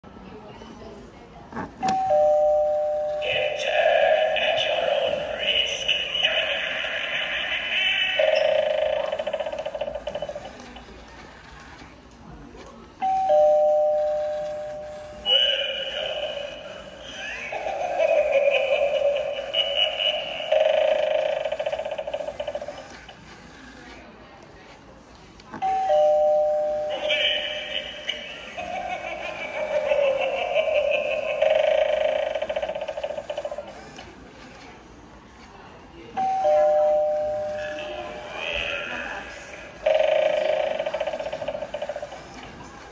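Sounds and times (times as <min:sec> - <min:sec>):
ding-dong doorbell chime: 0:01.9 - 0:03.3, 0:13.0 - 0:15.2, 0:25.6 - 0:27.1, 0:36.2 - 0:38.1
recorded voice through speaker: 0:03.1 - 0:08.4, 0:15.2 - 0:20.4, 0:26.9 - 0:30.1, 0:36.4 - 0:39.8.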